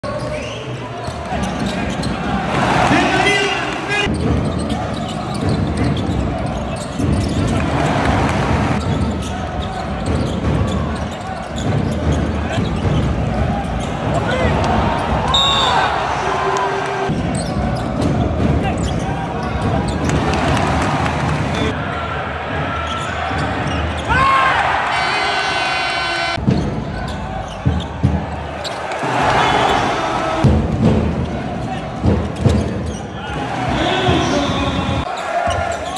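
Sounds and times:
arena crowd noise and voices: 0.0s - 35.9s
basketball bouncing on court: 4.1s - 15.3s, 17.1s - 21.7s, 26.4s - 28.8s, 30.4s - 33.0s.

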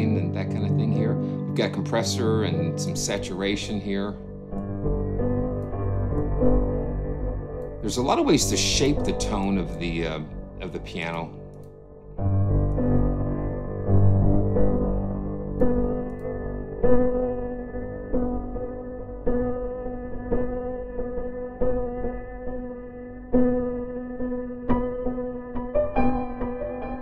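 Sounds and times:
deep bass piano notes: 0.0s - 19.6s
piano chords: 0.0s - 27.0s.

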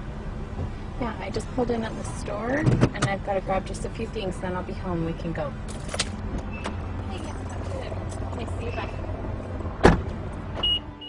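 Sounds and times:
steady low rumble: 0.0s - 10.9s
car door slamming: 9.8s - 10.8s.

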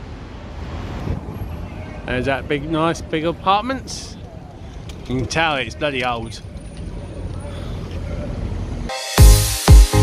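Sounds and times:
city traffic rumble: 0.0s - 8.9s
music: 8.9s - 10.0s.

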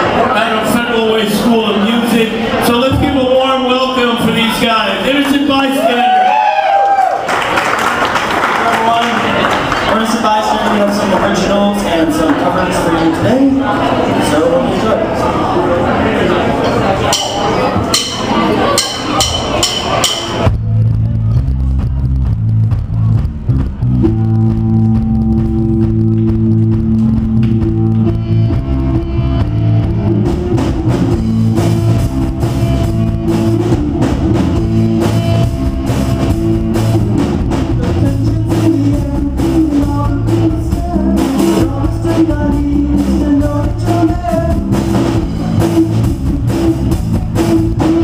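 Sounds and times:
bass guitar: 0.0s - 7.2s, 17.0s - 48.0s
drum kit beat: 17.1s - 48.0s
electric guitar: 20.4s - 48.0s.

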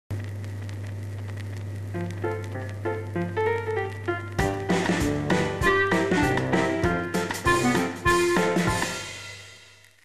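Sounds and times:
steady low hum: 0.1s - 7.2s
crackles: 0.1s - 10.0s
faint hiss: 0.1s - 10.0s.

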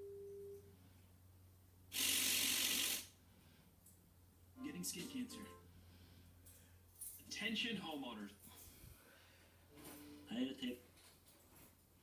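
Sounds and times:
television static hiss: 1.9s - 3.2s, 9.8s - 10.9s.

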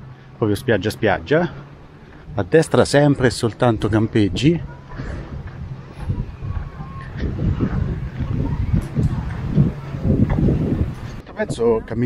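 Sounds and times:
wind rumbling on microphone: 2.1s - 12.0s.

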